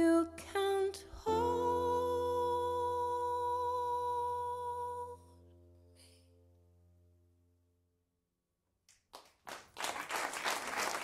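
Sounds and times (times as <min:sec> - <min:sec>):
woman singing: 0:00.0 - 0:05.3.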